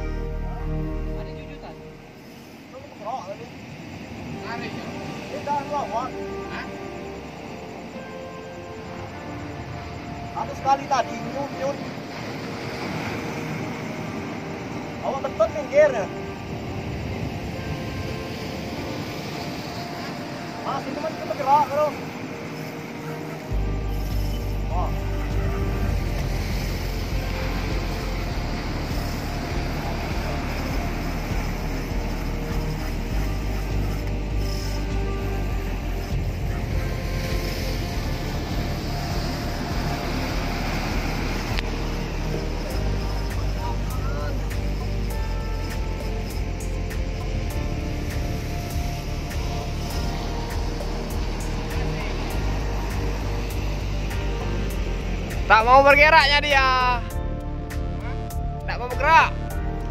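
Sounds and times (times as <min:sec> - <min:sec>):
background music with bass notes: 0:00.0 - 0:02.2, 0:23.3 - 0:59.9.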